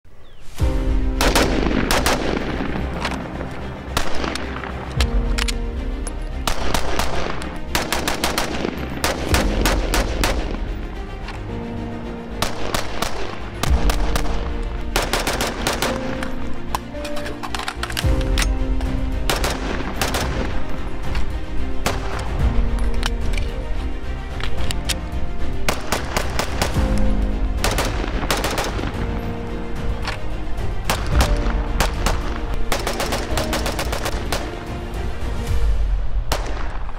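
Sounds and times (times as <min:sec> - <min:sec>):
background music with sustained tones: 0:00.1 - 0:36.9.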